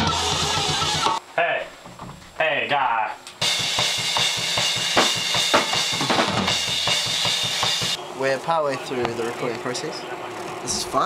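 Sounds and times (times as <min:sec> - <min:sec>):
cymbals crashing: 0:03.4 - 0:08.0
snare drum hits: 0:03.4 - 0:08.0.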